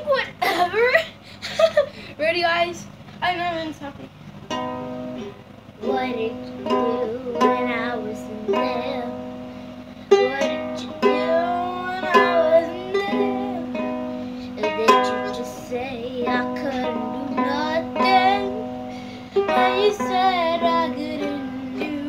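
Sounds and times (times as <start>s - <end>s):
ukulele strumming: 4.5s - 22.0s
child singing: 5.8s - 9.3s, 10.1s - 22.0s.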